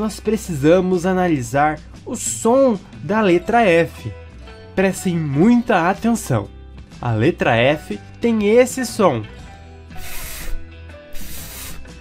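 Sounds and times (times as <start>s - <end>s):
background music: 0.0s - 12.0s
person making hissing fff sound: 10.0s - 12.0s.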